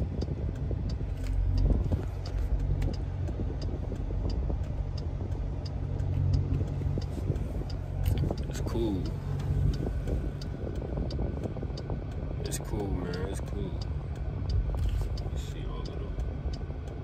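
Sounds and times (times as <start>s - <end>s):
car engine hum: 0.0s - 17.0s
turn signal clicking: 0.0s - 17.0s.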